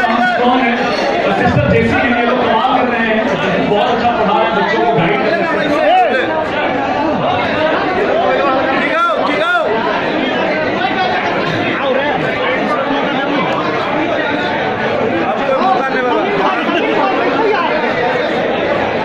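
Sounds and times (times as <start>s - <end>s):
crowd chatter in a hall: 0.0s - 19.0s.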